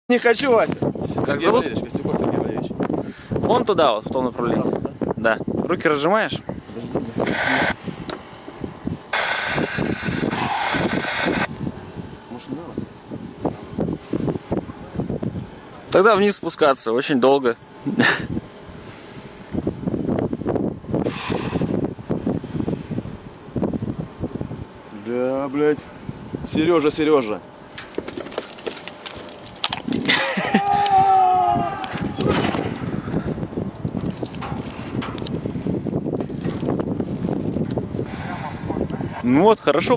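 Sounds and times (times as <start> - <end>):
faint outdoor background: 0.1 - 39.9
wind buffeting microphone: 0.2 - 16.2, 17.6 - 24.9, 25.6 - 27.2, 27.9 - 39.9.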